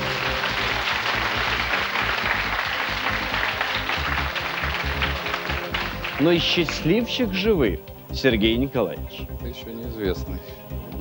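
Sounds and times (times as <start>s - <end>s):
studio audience applauding: 0.0s - 7.5s.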